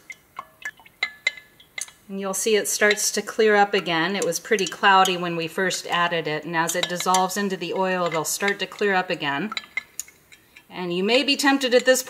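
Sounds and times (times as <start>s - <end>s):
stirrer clinking against glass: 0.0s - 12.0s.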